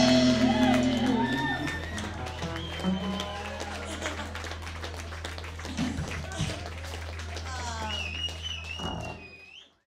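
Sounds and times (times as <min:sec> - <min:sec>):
low steady stage hum: 0:00.0 - 0:09.8
long wavering whistle: 0:07.9 - 0:09.8.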